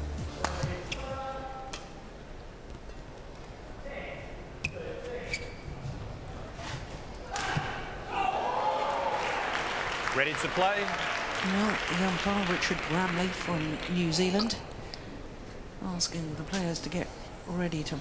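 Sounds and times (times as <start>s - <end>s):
rackets hitting shuttlecock: 0.4s - 2.0s.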